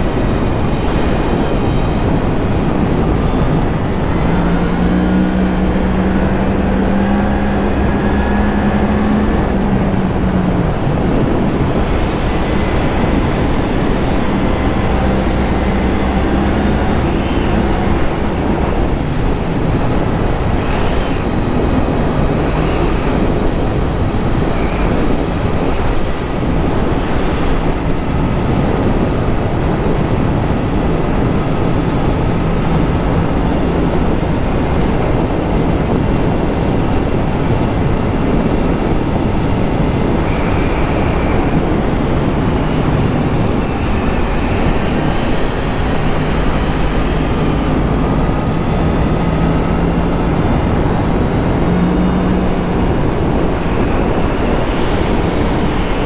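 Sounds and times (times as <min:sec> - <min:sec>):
motorcycle engine: 0:00.0 - 0:56.0
wind rushing over microphone: 0:00.0 - 0:56.0.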